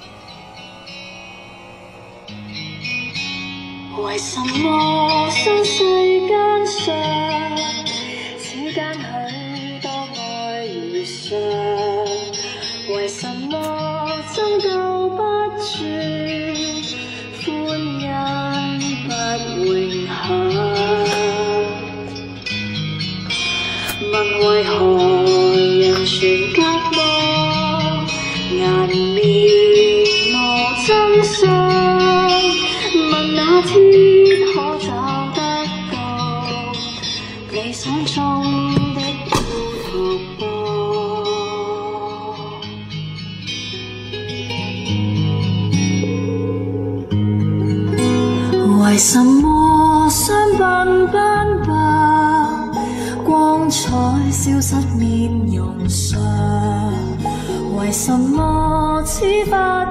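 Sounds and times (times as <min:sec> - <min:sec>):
person singing with guitar: 0:00.0 - 0:59.9.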